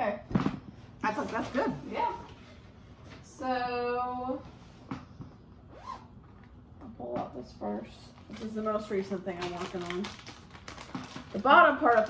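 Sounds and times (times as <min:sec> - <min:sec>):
zipper being pulled open: 0:05.7 - 0:06.1.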